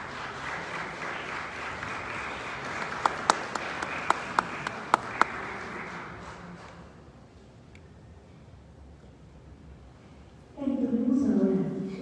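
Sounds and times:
crowd applauding: 0.0 - 7.0
sharp close claps: 0.2 - 6.9.

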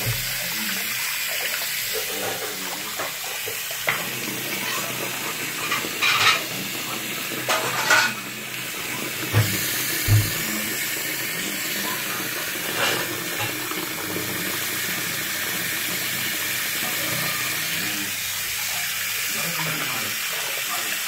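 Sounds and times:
tap water running into sink: 0.0 - 21.0.

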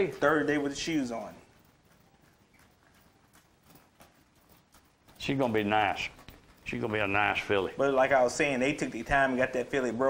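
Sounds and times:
hoofbeats on gravel: 0.0 - 10.0.

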